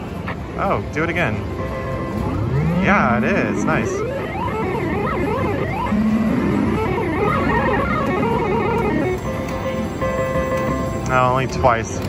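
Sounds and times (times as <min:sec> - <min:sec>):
slot machine electronic tune: 0:00.4 - 0:12.0
slot machine chiming tones: 0:00.8 - 0:12.0.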